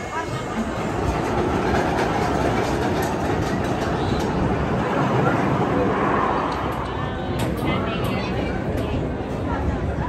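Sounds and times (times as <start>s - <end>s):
roller coaster wheels rumbling: 0.0s - 10.0s.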